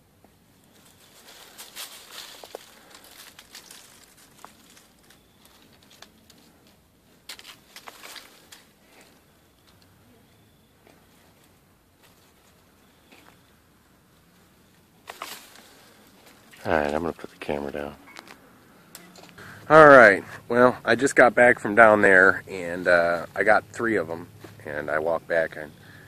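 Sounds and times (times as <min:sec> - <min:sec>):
twigs and leaves rustling: 0:00.2 - 0:20.2, 0:22.1 - 0:26.0.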